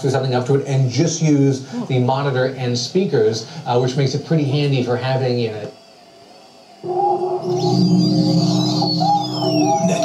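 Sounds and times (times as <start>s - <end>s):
electronic synth music: 6.8s - 10.0s
high sweeping synth glides: 6.8s - 10.0s.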